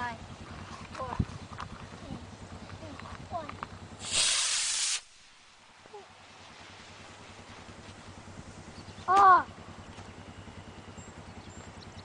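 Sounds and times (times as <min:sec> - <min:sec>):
rocket motor hiss: 0:04.0 - 0:05.8.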